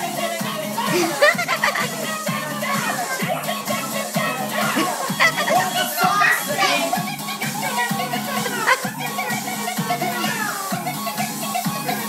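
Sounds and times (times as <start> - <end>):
music with steady beat: 0.0 - 12.0
children shouting and chattering: 0.7 - 10.9.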